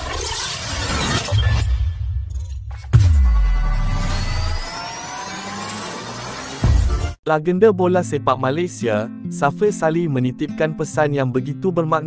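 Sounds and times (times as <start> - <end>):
sharp crashing hit: 1.8 - 4.7
falling boom: 2.9 - 4.8
music: 6.6 - 12.0.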